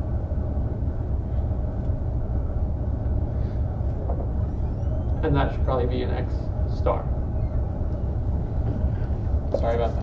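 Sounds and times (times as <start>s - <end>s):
ventilation rumble: 0.0s - 10.0s.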